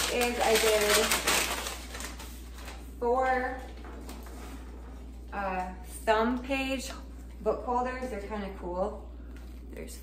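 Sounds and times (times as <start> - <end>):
paper bag rustling: 0.0 - 2.9.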